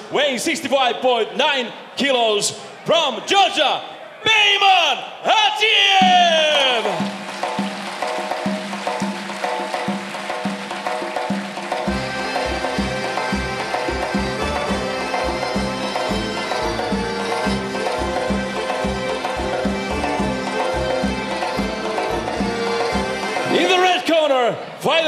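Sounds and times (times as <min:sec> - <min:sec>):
music with percussive beat: 0:06.0 - 0:23.6.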